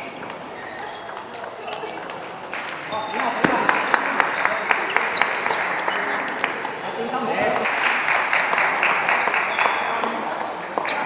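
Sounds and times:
sports hall background: 0.0s - 11.0s.

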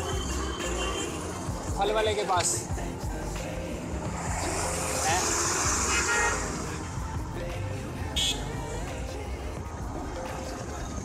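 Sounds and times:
vehicle horn honking: 0.0s - 1.4s
low engine rumble: 0.0s - 11.0s
street traffic: 0.0s - 11.0s.

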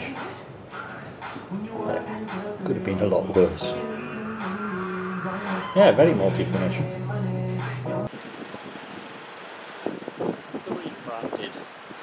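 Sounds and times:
wind on microphone: 9.8s - 12.0s.

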